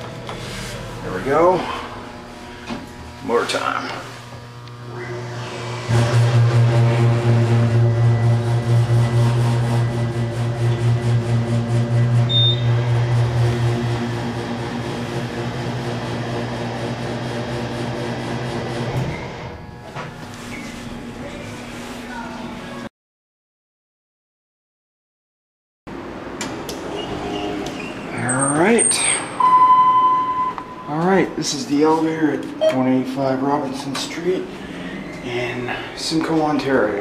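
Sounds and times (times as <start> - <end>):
elevator motor humming: 0.0 - 20.4.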